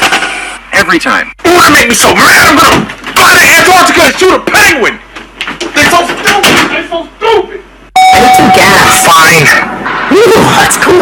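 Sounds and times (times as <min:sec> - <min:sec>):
steady electronic tone: 0:08.0 - 0:10.0.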